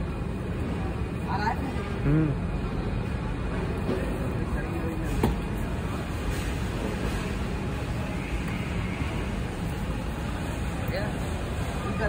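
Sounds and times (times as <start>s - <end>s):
factory floor background noise: 0.0s - 12.0s.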